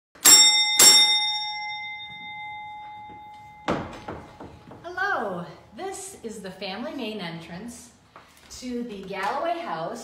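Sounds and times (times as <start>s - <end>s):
doorbell ringing: 0.2s - 4.8s.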